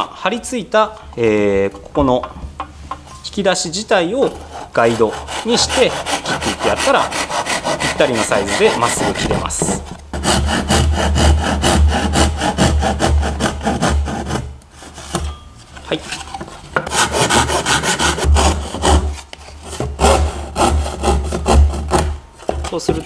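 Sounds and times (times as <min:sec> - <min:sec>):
pull saw cutting wood: 0:04.3 - 0:15.2, 0:16.8 - 0:22.8.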